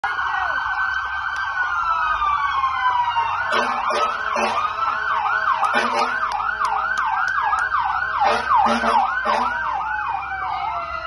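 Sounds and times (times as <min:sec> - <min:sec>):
emergency vehicle sirens wailing: 0:00.0 - 0:11.0.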